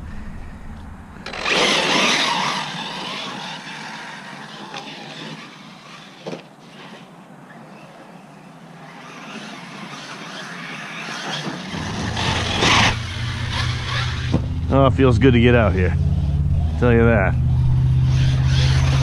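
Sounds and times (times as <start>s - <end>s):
tyres on grass and dirt: 0.0s - 19.0s
electric rc truck motor: 1.2s - 7.1s, 8.6s - 14.6s, 17.5s - 19.0s.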